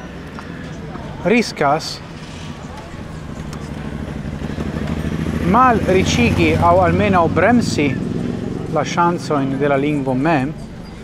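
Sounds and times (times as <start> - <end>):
low engine drone: 0.0 - 11.0.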